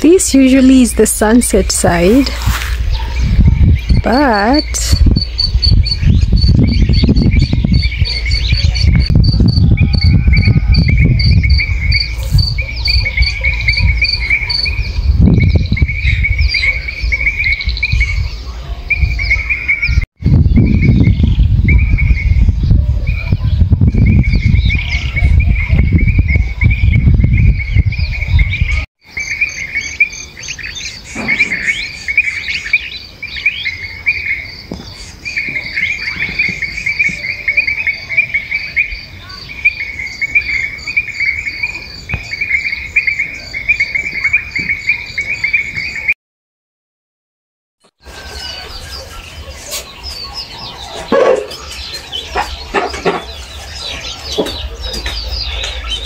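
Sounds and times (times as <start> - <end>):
bird calls: 0.1 - 22.4, 23.0 - 46.2, 48.0 - 56.0.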